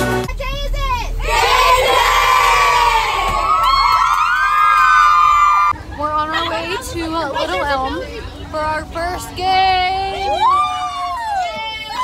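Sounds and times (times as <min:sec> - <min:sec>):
girls cheering and screaming: 0:01.2 - 0:05.8, 0:10.1 - 0:12.0.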